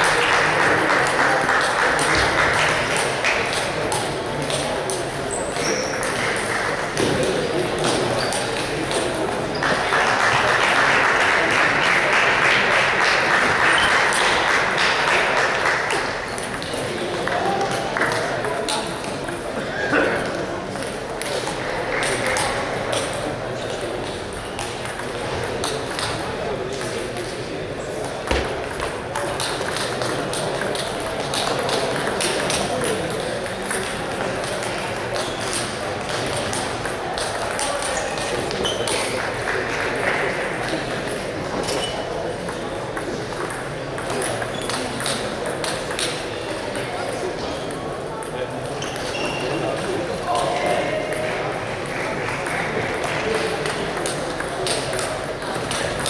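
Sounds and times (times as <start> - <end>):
voices around a hall: 0.0 - 56.0
table tennis balls clicking: 28.3 - 39.1, 42.5 - 46.3, 52.8 - 56.0.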